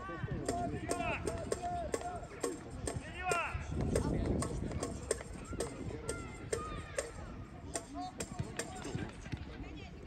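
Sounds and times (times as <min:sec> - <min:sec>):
sharp knocks: 0:00.5 - 0:07.2, 0:07.8 - 0:08.9.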